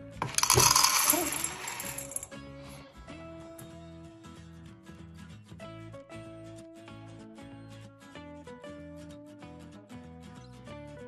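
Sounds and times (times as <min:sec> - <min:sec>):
kibble clattering into metal bowl: 0:00.2 - 0:02.2.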